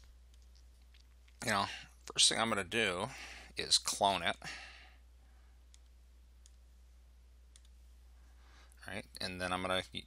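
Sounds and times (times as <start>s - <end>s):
faint mouse clicks: 0.0s - 1.4s, 5.7s - 6.6s, 7.5s - 7.8s
low steady hum: 0.0s - 10.0s.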